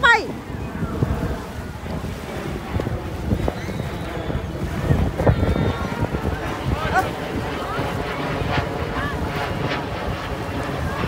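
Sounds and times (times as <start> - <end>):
surf washing on beach: 0.0 - 11.0
wind buffeting microphone: 0.0 - 11.0.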